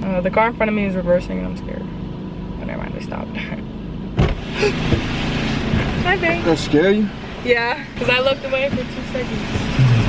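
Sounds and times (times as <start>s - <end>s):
car low hum: 0.0s - 10.0s
car door latch click: 4.2s - 5.1s.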